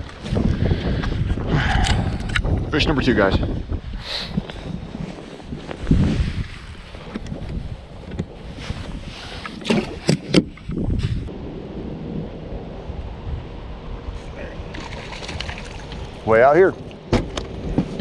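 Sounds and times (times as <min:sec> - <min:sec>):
wind rumbling on microphone: 0:00.0 - 0:18.0
thump on boat deck: 0:17.1 - 0:18.0.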